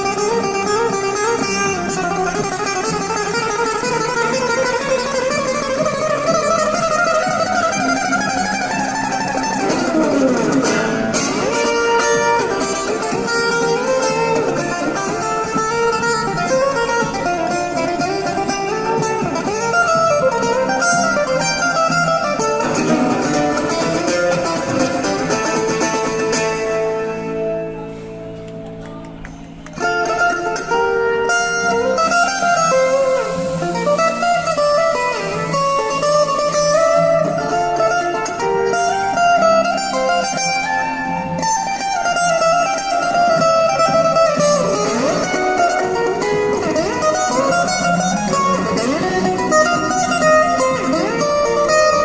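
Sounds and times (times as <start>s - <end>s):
acoustic guitar picking: 0.0s - 52.0s.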